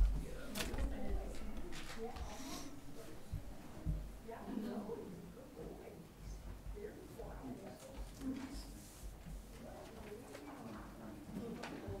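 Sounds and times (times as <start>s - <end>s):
low murmur of voices: 0.0s - 12.0s.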